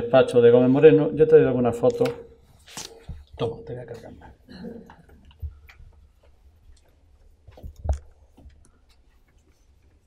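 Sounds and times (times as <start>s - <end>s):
papers being handled: 2.0s - 3.3s.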